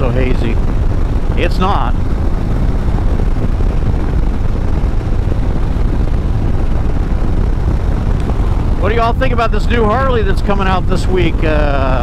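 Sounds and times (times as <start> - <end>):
motorcycle engine rumbling: 0.0 - 12.0
wind and road noise: 0.0 - 12.0.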